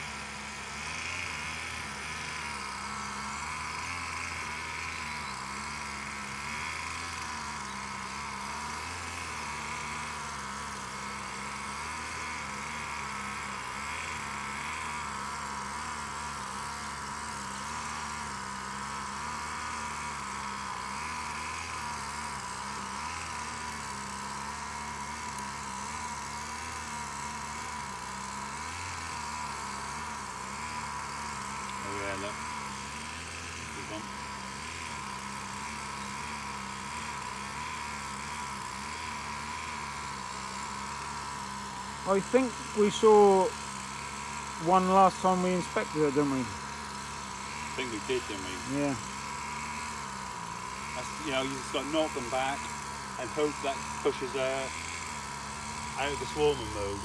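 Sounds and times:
honeybees buzzing: 0.0 - 57.0.

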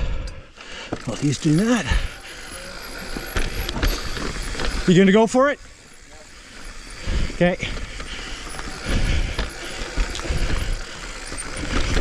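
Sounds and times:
bike tyre and drivetrain rattle: 0.0 - 12.0.

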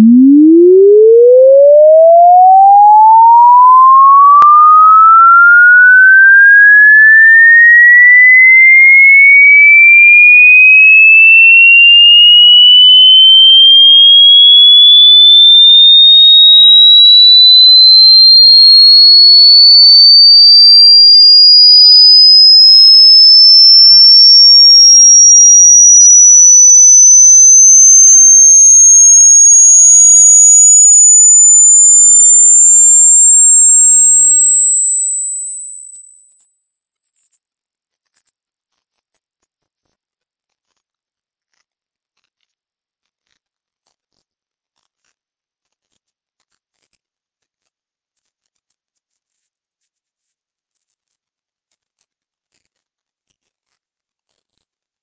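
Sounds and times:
rising sine-wave test tone: 0.0 - 55.0.

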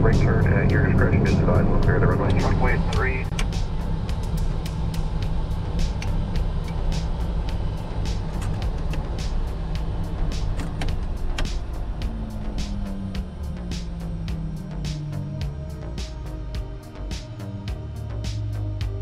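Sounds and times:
background music: 0.0 - 19.0
turboprop cabin rumble: 0.0 - 19.0.

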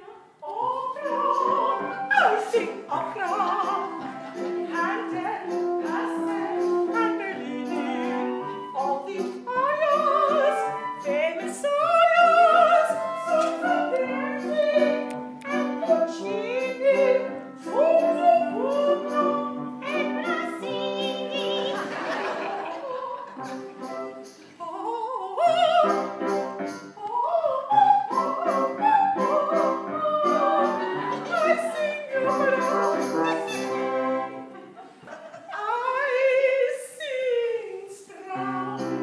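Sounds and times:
woman singing opera: 0.0 - 21.9, 24.6 - 26.1, 27.0 - 34.0, 35.4 - 39.0
orchestra with strings: 28.2 - 34.8.

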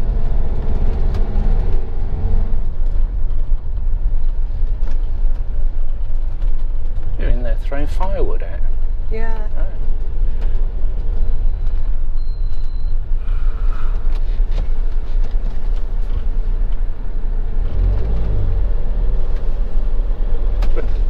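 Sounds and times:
engine and road rumble: 0.0 - 21.0.

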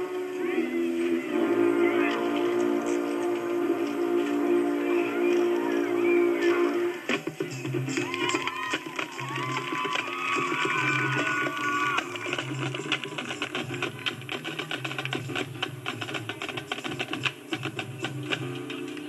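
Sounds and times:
wind and brass chords: 0.0 - 7.9
rapid drum strokes: 0.0 - 19.0.

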